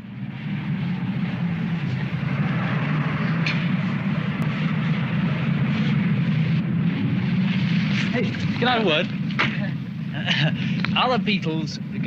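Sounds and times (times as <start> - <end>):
small car engine running: 0.0 - 12.0.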